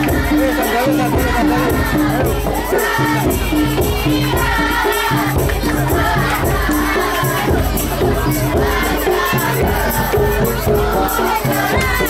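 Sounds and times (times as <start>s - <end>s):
crowd shouting and cheering: 0.0s - 12.0s
drums and rattling percussion: 0.0s - 12.0s
voices singing: 0.0s - 12.0s.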